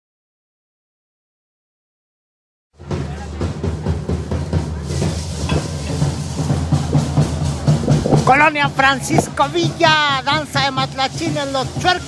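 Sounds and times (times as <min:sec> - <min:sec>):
drums beating fast rhythm: 0:02.8 - 0:12.0.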